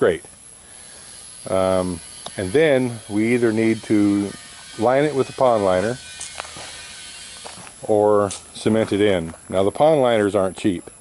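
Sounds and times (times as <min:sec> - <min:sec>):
man talking: 0:00.0 - 0:00.3, 0:01.5 - 0:06.0, 0:07.8 - 0:11.0
faint background hiss: 0:00.0 - 0:11.0.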